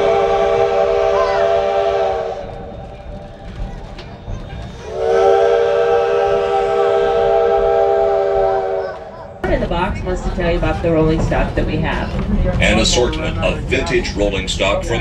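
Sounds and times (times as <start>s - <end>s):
steam locomotive whistle blasts: 0.0s - 2.6s, 4.9s - 9.0s.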